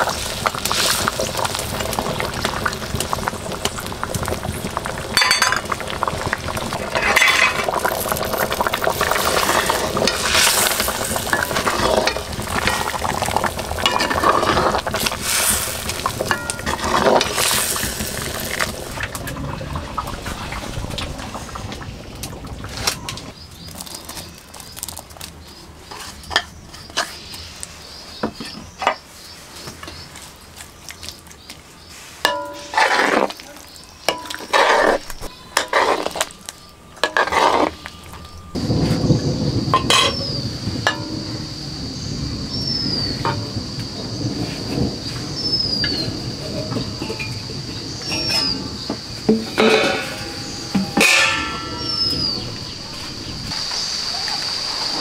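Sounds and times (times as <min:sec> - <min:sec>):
curry bubbling in a wok: 0:00.0 - 0:28.4, 0:29.3 - 0:55.0
metal ladle scraping a pan: 0:06.9 - 0:18.8, 0:32.2 - 0:33.4, 0:34.1 - 0:36.3, 0:37.0 - 0:37.9, 0:39.8 - 0:40.2, 0:49.3 - 0:52.8.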